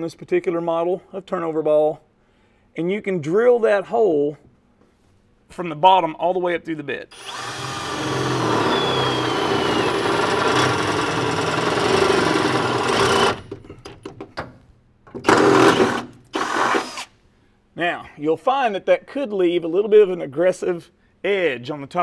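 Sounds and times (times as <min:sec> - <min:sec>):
cordless drill boring through steel: 0:07.1 - 0:13.6, 0:15.2 - 0:17.1.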